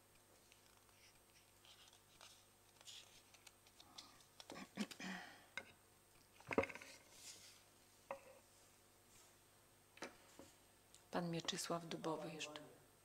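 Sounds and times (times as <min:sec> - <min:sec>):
objects clicking and knocking on tables: 0:06.4 - 0:07.1, 0:08.1 - 0:08.4.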